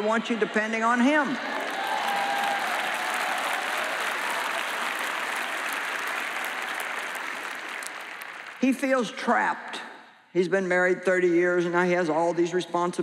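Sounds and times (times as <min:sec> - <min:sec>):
audience applauding: 0:00.0 - 0:08.8.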